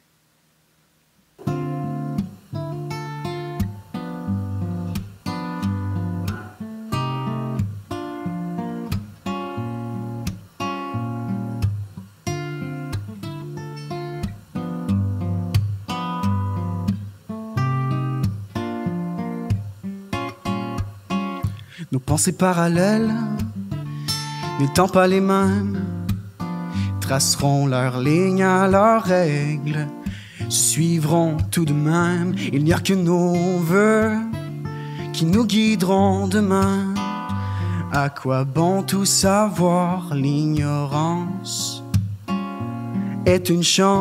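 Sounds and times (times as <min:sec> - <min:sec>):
acoustic guitar chords: 0:01.4 - 0:44.0.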